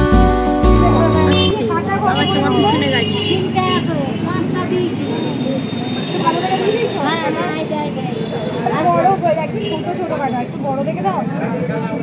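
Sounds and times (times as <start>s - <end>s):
road traffic hum: 0.0s - 12.0s
people talking: 0.6s - 12.0s.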